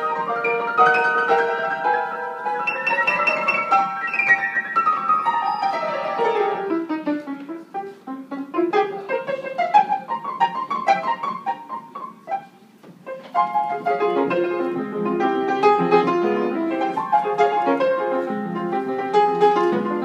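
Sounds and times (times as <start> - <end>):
piano run of notes: 0.0 - 20.0.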